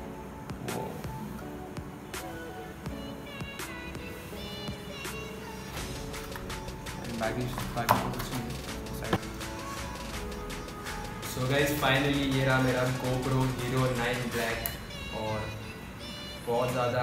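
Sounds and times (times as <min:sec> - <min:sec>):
electronic music: 0:00.0 - 0:17.0.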